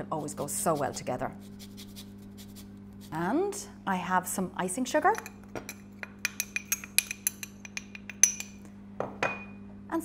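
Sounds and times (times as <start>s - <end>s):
ceramic clinking on glass: 5.1s - 9.6s.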